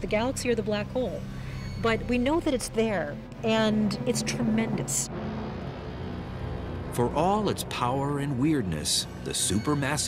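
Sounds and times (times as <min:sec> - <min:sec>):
low sustained drone music: 0:00.0 - 0:10.0.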